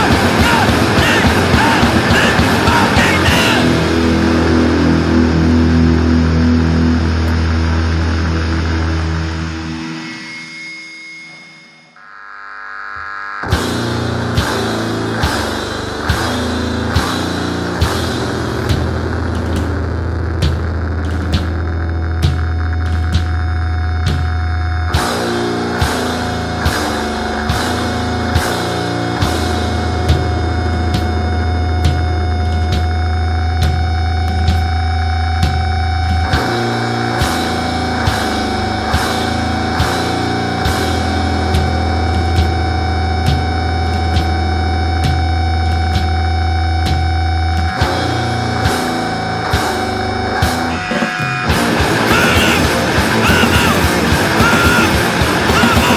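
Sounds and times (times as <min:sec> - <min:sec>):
drum hits: 0:00.0 - 0:08.9, 0:50.4 - 0:55.9
distorted guitars and bass ringing: 0:00.0 - 0:55.9
high steady ringing tone: 0:04.9 - 0:13.5.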